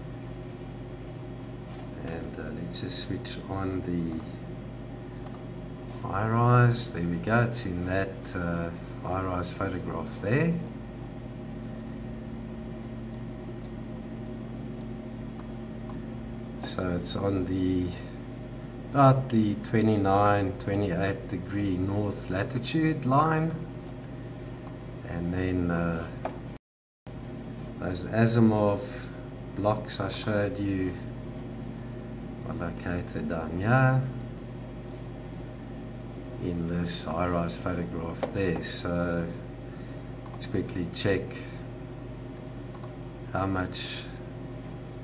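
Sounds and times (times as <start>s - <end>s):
low background hum: 0.0s - 45.0s
faint clicks: 42.7s - 43.0s.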